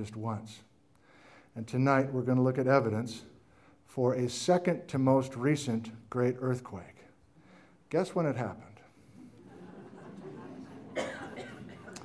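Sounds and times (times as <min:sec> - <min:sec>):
person coughing: 0:10.9 - 0:12.0.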